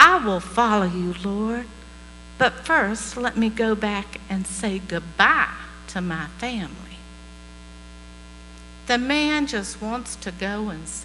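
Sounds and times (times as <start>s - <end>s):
woman speaking: 0.0s - 1.8s, 2.4s - 7.0s, 8.9s - 11.0s
electrical mains hum: 0.0s - 11.0s.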